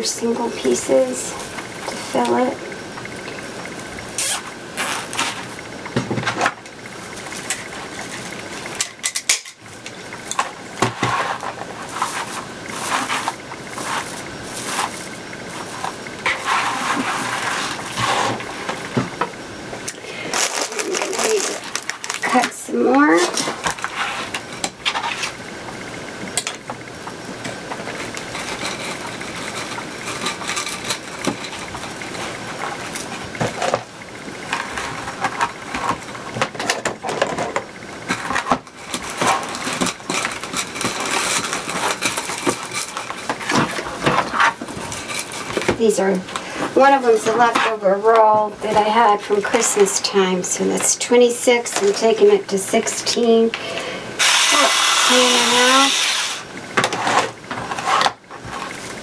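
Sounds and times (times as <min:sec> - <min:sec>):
plastic mesh rustling and crinkling: 0:20.3 - 0:22.6.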